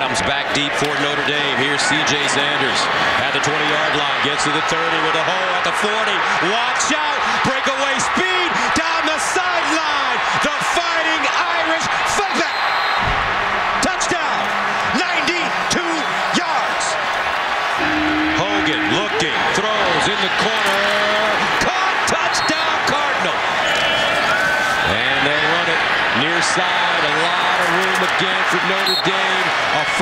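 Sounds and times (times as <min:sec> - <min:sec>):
stadium crowd roar: 0:00.0 - 0:30.0
voices shouting: 0:13.8 - 0:30.0
brief held tones: 0:17.8 - 0:19.2.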